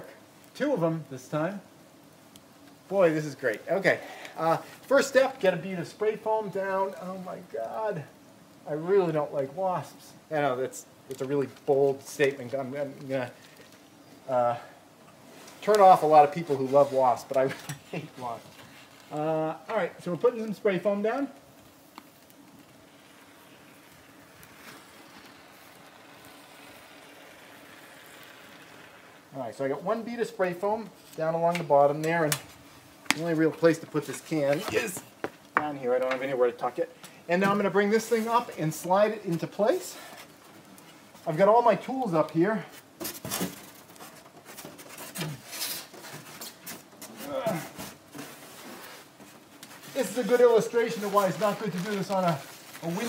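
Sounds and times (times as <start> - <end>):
person grunting: 47.2 - 47.7.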